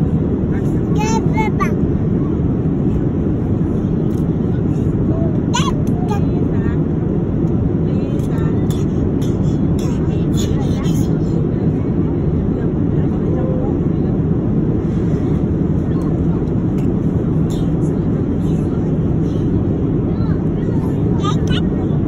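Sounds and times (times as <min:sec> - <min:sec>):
airliner cabin noise: 0:00.0 - 0:22.0.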